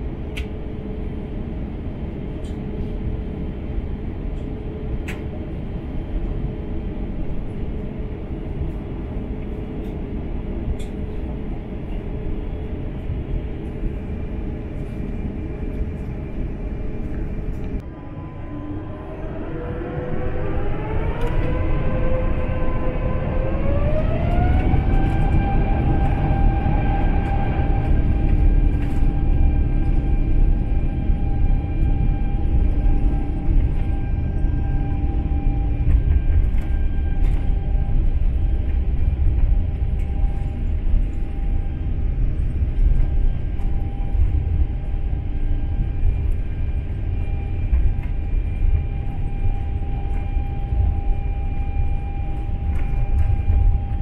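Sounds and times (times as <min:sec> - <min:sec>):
jet engine rumble in cabin: 0:00.0 - 0:54.0
jet engine whine: 0:00.0 - 0:54.0.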